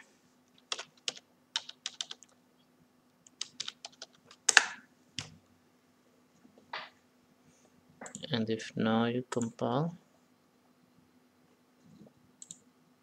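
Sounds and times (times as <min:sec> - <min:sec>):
typing on computer keyboard: 0:00.6 - 0:02.4, 0:03.3 - 0:04.7, 0:09.3 - 0:09.6.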